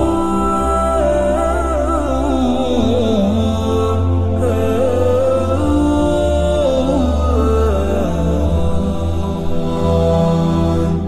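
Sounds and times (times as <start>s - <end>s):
voices singing sustained notes: 0.0s - 11.0s.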